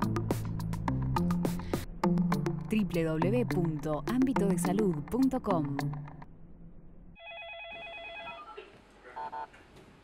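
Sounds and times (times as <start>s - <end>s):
warbling electronic ringing tone: 7.2s - 8.5s.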